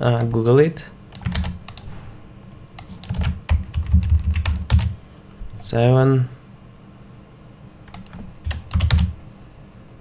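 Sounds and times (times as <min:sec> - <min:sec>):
computer keyboard keystrokes: 0:01.1 - 0:01.9, 0:02.8 - 0:05.0, 0:07.9 - 0:09.2.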